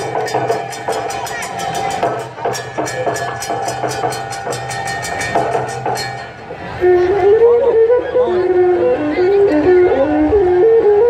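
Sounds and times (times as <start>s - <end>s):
traditional ornamented melody: 0.0s - 11.0s.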